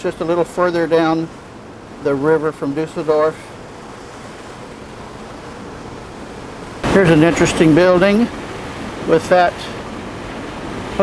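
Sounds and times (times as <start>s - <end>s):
man talking: 0.0s - 1.4s, 2.0s - 3.6s, 6.8s - 8.4s, 9.0s - 9.8s
water rushing: 0.0s - 11.0s.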